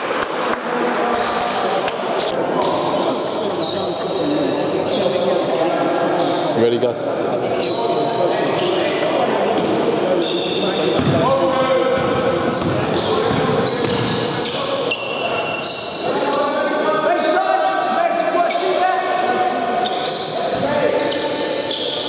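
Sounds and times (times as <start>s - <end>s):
players' voices and calls: 0.0s - 22.0s
basketball bouncing on court floor: 11.0s - 11.3s, 12.0s - 14.2s.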